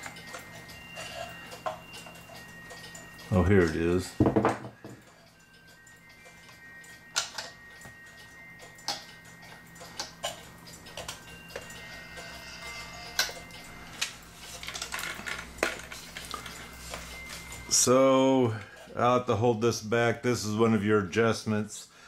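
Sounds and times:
clock mechanism clicks: 0:00.0 - 0:04.2, 0:04.8 - 0:19.8
music box notes: 0:00.0 - 0:20.6.

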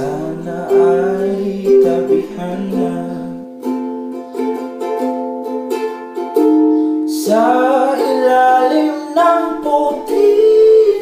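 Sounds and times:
ukulele strumming chords: 0:00.0 - 0:11.0.

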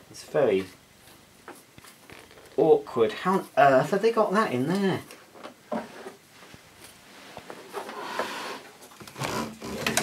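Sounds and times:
faint clicks and rustling: 0:00.5 - 0:02.7.

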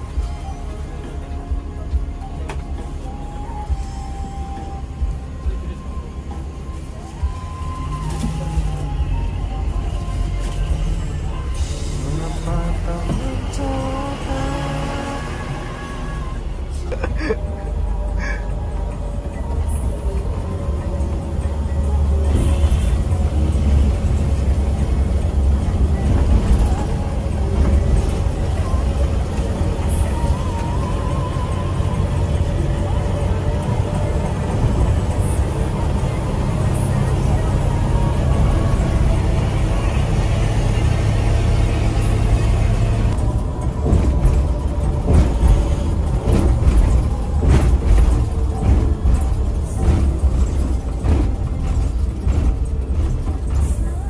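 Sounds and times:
diesel engine droning: 0:00.0 - 0:54.0
music playing: 0:00.0 - 0:54.0
road noise: 0:00.0 - 0:54.0.

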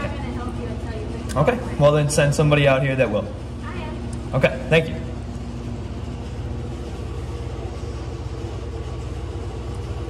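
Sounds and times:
low background hum and rumble: 0:00.0 - 0:10.0.

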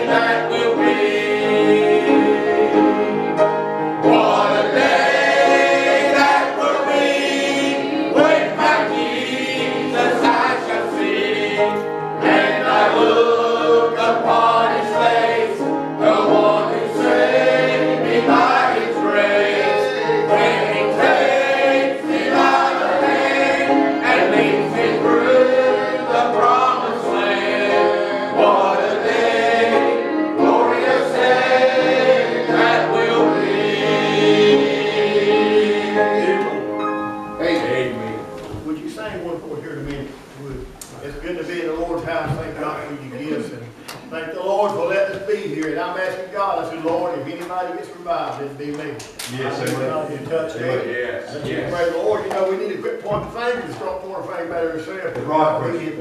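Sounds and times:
congregation singing a hymn: 0:00.0 - 0:56.0.

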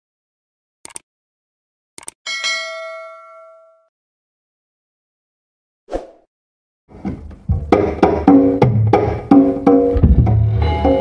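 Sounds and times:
bright bell ding: 0:02.3 - 0:03.9.

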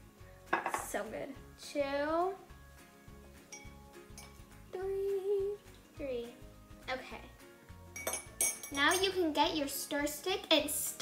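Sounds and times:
teaspoon clinking against glass: 0:03.5 - 0:04.4, 0:07.9 - 0:09.2.

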